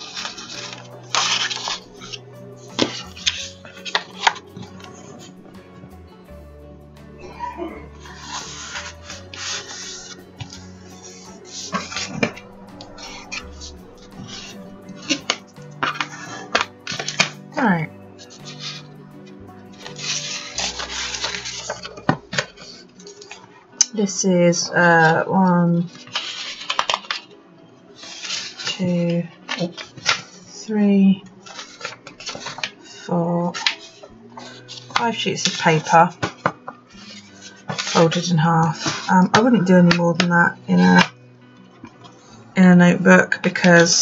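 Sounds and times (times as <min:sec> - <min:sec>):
paper folding and creasing: 0:00.0 - 0:05.3, 0:07.2 - 0:18.9, 0:19.6 - 0:23.5, 0:25.9 - 0:27.3, 0:28.0 - 0:28.8, 0:31.4 - 0:40.0
paper rustling and sliding: 0:00.0 - 0:05.8, 0:07.8 - 0:17.4, 0:18.2 - 0:18.9, 0:19.6 - 0:23.5, 0:25.9 - 0:27.3, 0:28.0 - 0:28.8, 0:29.4 - 0:30.4, 0:31.4 - 0:40.0.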